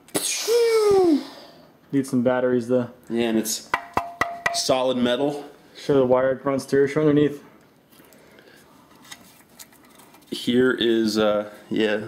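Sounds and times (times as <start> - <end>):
person making hissing noise: 0.1 - 1.6.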